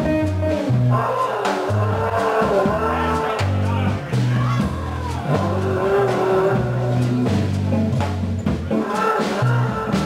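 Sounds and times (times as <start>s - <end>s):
drums: 0.0s - 10.0s
upright bass: 0.0s - 10.0s.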